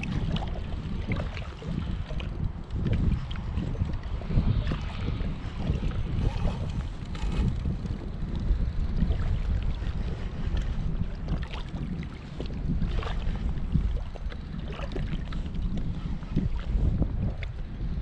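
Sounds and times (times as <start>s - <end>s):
water lapping against boat: 0.0s - 18.0s
wind buffeting microphone: 0.0s - 18.0s.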